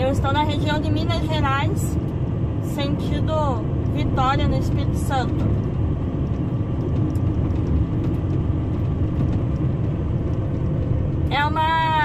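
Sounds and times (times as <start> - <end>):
diesel truck engine rumble: 0.0 - 12.0.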